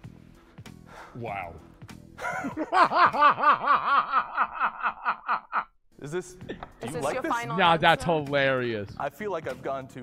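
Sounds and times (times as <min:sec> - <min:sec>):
person laughing: 0:02.2 - 0:05.8.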